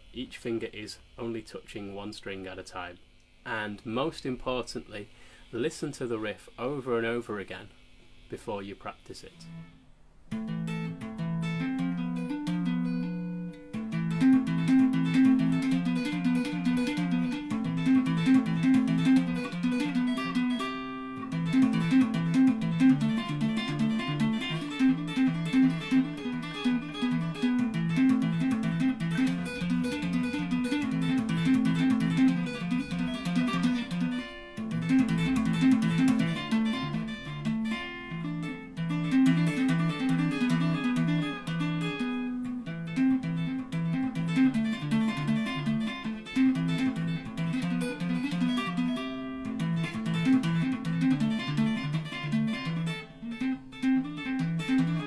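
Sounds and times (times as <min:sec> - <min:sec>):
fast electric guitar picking: 0:09.3 - 0:55.0.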